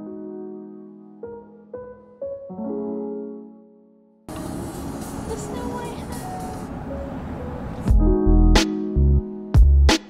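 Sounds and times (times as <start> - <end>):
car road and engine noise: 4.3 - 8.0.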